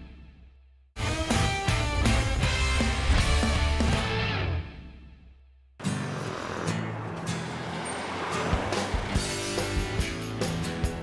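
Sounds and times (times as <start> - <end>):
background music: 0.0 - 11.0
passing street traffic: 5.8 - 11.0.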